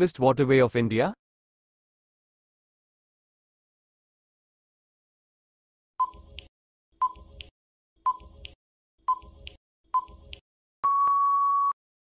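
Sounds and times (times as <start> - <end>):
timer tick: 6.0 - 7.5, 8.1 - 10.4.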